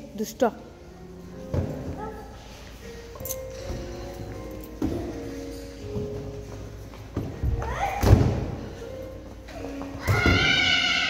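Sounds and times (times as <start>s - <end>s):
child shrieking: 10.0s - 11.0s.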